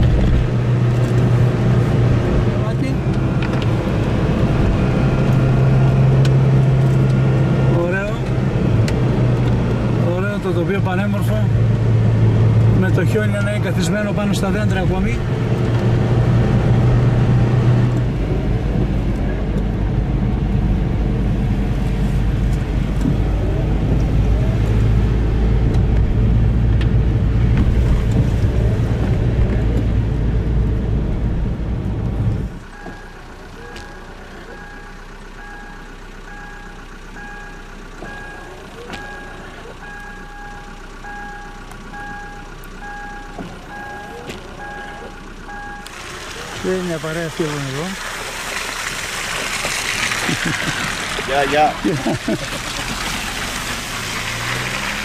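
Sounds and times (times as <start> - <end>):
car engine and road noise: 0.0 - 55.0
repeating beep: 32.7 - 45.9.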